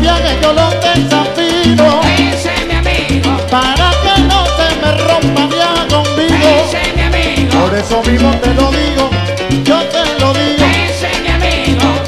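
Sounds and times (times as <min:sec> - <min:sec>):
live salsa band: 0:00.0 - 0:12.0
upright bass line: 0:00.0 - 0:12.0.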